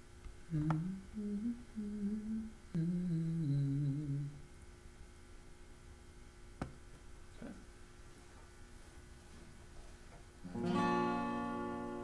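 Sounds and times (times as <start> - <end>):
man humming: 0.5 - 4.5.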